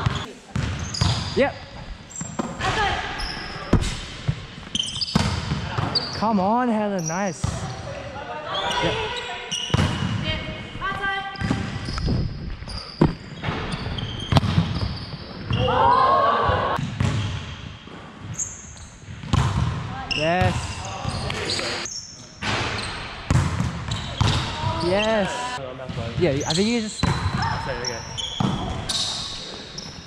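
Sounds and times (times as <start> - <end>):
volleyball thudding on hardwood court: 5.1 - 6.0, 9.7 - 10.2, 14.3 - 15.7, 19.2 - 20.7, 22.4 - 24.8, 27.0 - 27.5, 28.4 - 28.8
players shouting: 15.5 - 16.8.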